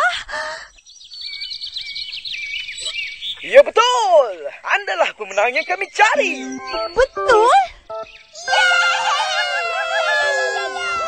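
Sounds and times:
small birds chirping: 0:00.4 - 0:09.0
woman speaking: 0:06.2 - 0:07.7.

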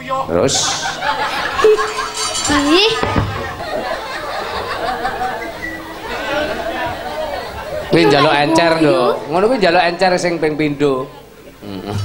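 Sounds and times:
chatter of overlapping voices: 0:00.0 - 0:12.0.

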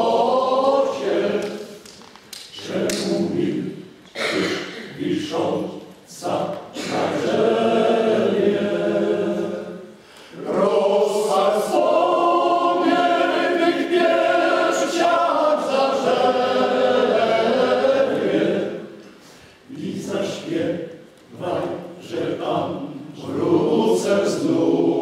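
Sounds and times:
men's choir singing: 0:00.0 - 0:01.8, 0:02.5 - 0:19.0, 0:19.7 - 0:25.0.

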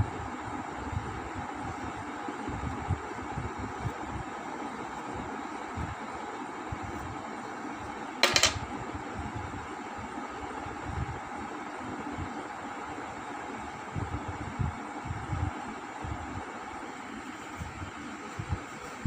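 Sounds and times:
background hum and hiss: 0:00.0 - 0:19.0.

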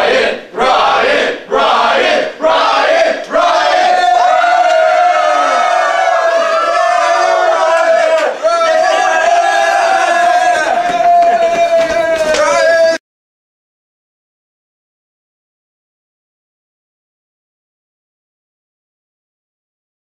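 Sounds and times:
students chanting in unison: 0:00.0 - 0:04.2
crowd cheering and yelling: 0:03.6 - 0:13.0.

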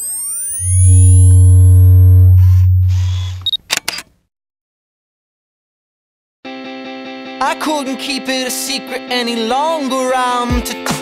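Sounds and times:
higher steady tones: 0:00.0 - 0:03.4
deep bass drone: 0:00.6 - 0:03.5
camera shutter noises: 0:03.0 - 0:04.1.

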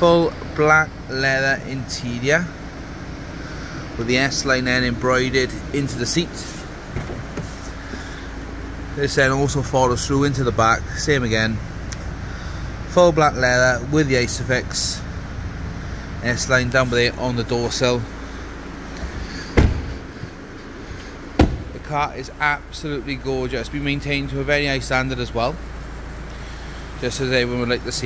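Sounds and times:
steady low hum: 0:00.0 - 0:28.0
car door shutting thud: 0:06.9 - 0:08.0, 0:19.0 - 0:20.2, 0:21.3 - 0:21.8.

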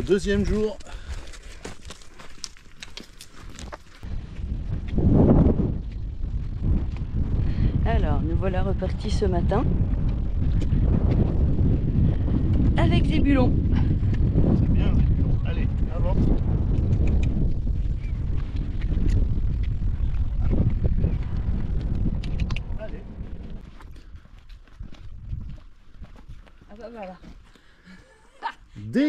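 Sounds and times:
wind buffeting microphone: 0:03.4 - 0:28.0.

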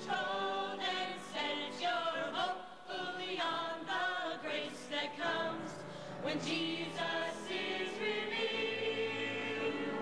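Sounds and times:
mixed group singing unaccompanied: 0:00.0 - 0:10.0.

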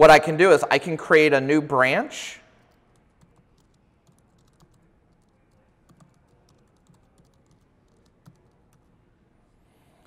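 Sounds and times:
faint laptop keyboard typing: 0:02.6 - 0:09.0.

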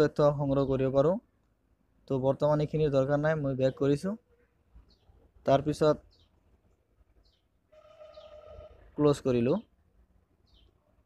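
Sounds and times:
faint high bird chirps: 0:03.6 - 0:05.3, 0:05.9 - 0:09.7, 0:10.4 - 0:11.0.

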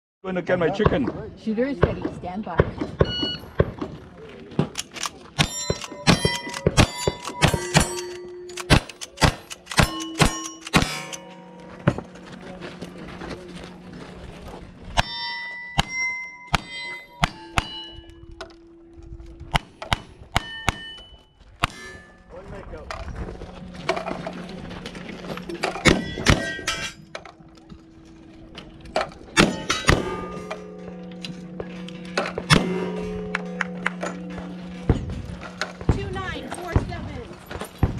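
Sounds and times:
gunshots: 0:04.6 - 0:11.2, 0:25.8 - 0:26.9
steel target clang: 0:05.4 - 0:12.2, 0:15.0 - 0:18.5, 0:19.5 - 0:22.4, 0:25.6 - 0:27.3, 0:29.0 - 0:37.0.

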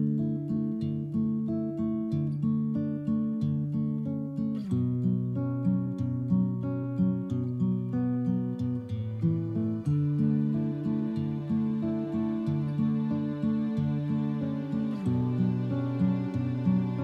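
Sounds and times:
classical guitar fingerpicking: 0:00.0 - 0:17.0.

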